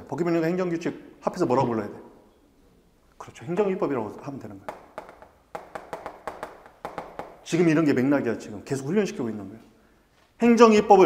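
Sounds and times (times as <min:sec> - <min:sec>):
chalk tapping on blackboard: 0:04.2 - 0:07.6.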